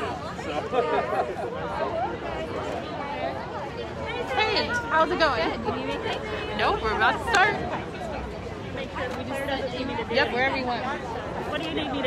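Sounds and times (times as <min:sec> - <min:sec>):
indistinct conversation: 0:00.0 - 0:12.0.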